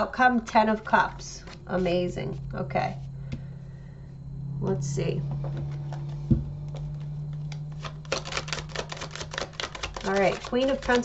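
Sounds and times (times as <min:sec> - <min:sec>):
low electrical hum: 0:00.0 - 0:11.0
cards being shuffled: 0:05.5 - 0:11.0.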